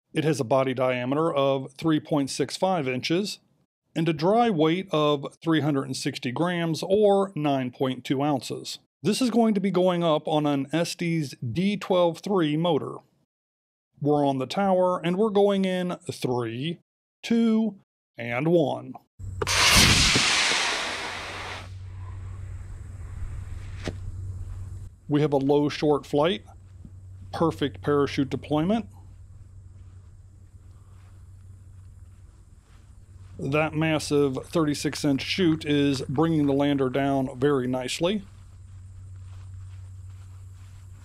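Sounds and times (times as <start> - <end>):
low hum: 19.2 - 41.0
model rocket motor hissing: 19.4 - 22.0
soft footsteps in grass: 22.1 - 41.0
faint sharp pop: 23.8 - 24.1.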